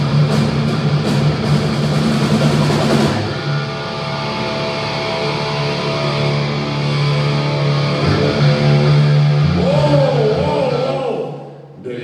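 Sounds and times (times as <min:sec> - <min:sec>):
drum kit with cymbals: 0:00.0 - 0:03.7
electric guitar: 0:00.0 - 0:11.8.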